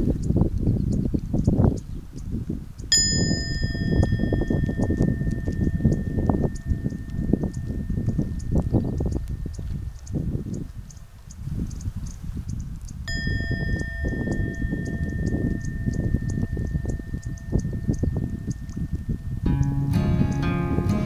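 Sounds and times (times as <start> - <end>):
high ringing tone: 2.9 - 10.3, 13.0 - 20.8
low outdoor rumble: 12.8 - 21.0
acoustic guitar music: 18.2 - 21.0.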